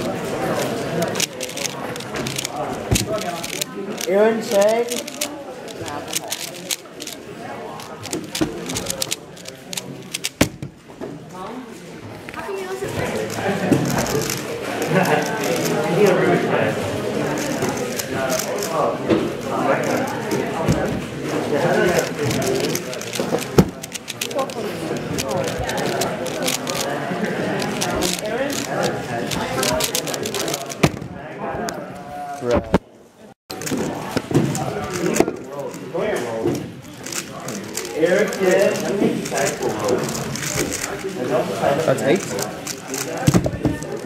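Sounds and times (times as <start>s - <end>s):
speedcube clicking: 0.0s - 10.7s, 12.9s - 16.2s, 17.2s - 20.9s, 21.5s - 30.9s, 33.5s - 36.0s, 36.8s - 44.0s
puzzle cube turning rapidly: 0.0s - 10.8s, 12.2s - 31.3s, 33.5s - 44.0s
murmur of voices: 0.0s - 44.0s.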